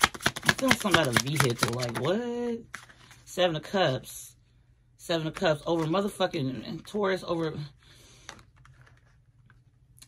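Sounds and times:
cards tapping and sliding on cloth: 0:00.0 - 0:02.1
low steady hum: 0:00.5 - 0:10.0.

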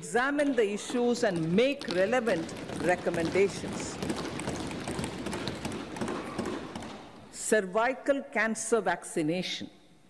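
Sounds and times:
people thumping desks: 0:00.3 - 0:07.4.

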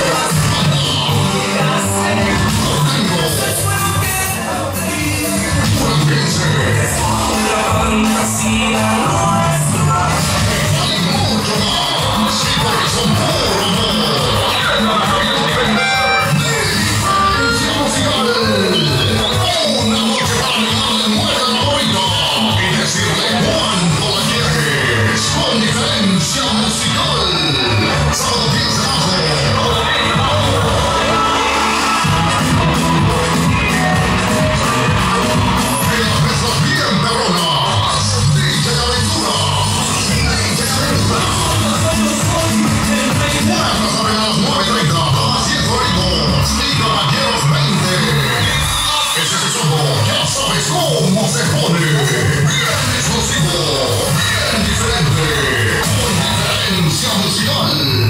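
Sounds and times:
live band playing: 0:00.0 - 0:06.2, 0:10.0 - 0:19.6
live band playing amplified music: 0:00.0 - 0:58.0.

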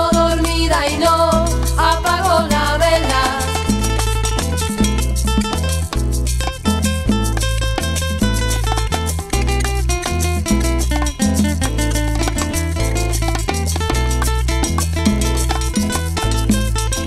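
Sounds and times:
band playing dance music: 0:00.0 - 0:04.3
bass line: 0:00.0 - 0:17.0.

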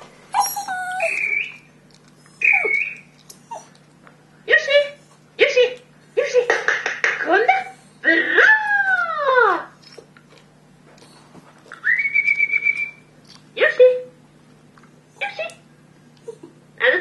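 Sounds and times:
dog howling: 0:00.4 - 0:01.6.

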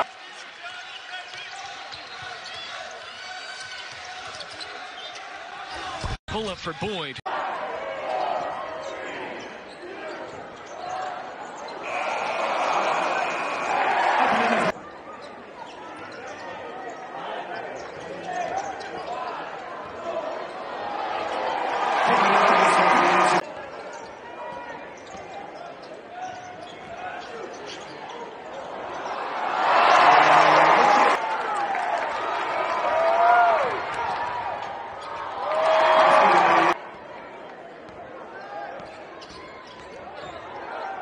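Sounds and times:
crowd and players talking: 0:00.0 - 0:41.0
sneaker squeaks: 0:23.6 - 0:29.1, 0:38.6 - 0:41.0.

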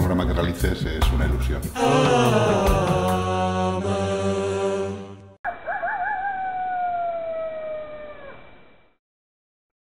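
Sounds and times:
coyote howl: 0:05.5 - 0:08.4.

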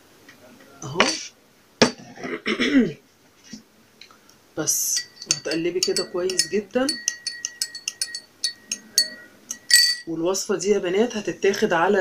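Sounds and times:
glass knocking on plastic tray: 0:05.0 - 0:09.1.

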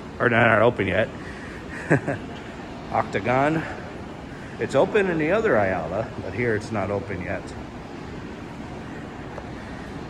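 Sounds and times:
indoor mall background noise: 0:00.0 - 0:10.0.

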